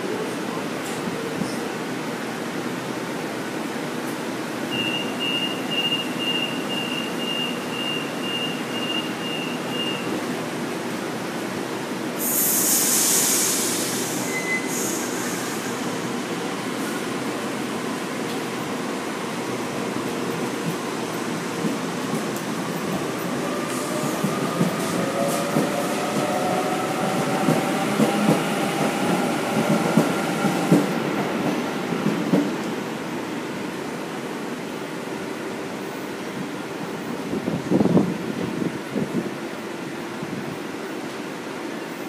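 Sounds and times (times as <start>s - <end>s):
door-closing warning beeps: 4.7s - 10.2s, 14.3s - 14.7s
loud air hiss: 12.2s - 17.2s
electric train moving off: 20.0s - 32.1s.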